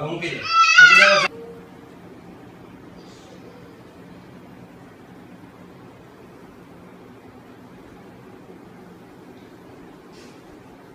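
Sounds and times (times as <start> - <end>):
faint steady hum: 0.0 - 10.9
high-pitched wavering cry: 0.4 - 1.3.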